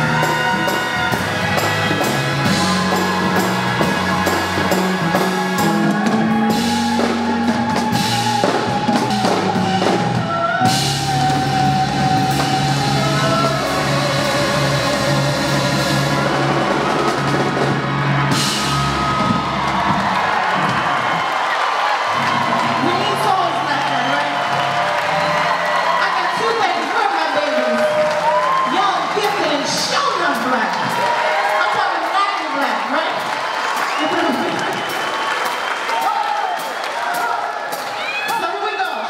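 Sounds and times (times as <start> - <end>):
soul band playing: 0.0 - 21.3
woman singing: 8.3 - 15.9.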